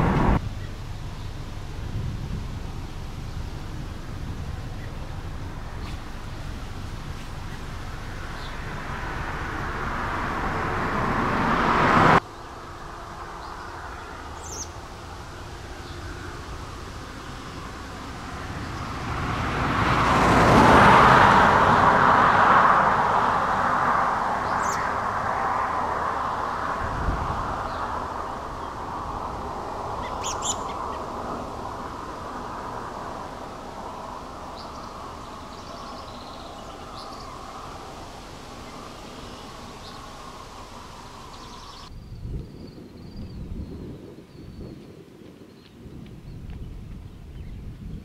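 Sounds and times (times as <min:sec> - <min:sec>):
cars passing: 0:00.0 - 0:41.9
bird chirps: 0:13.4 - 0:16.4, 0:24.4 - 0:25.0, 0:30.0 - 0:31.1, 0:34.5 - 0:43.4.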